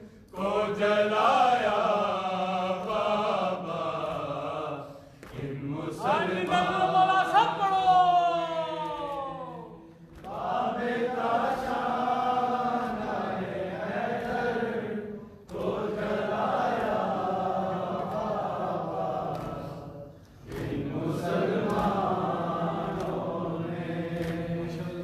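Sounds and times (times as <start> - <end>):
men chanting a mourning lament: 0.4 - 25.0.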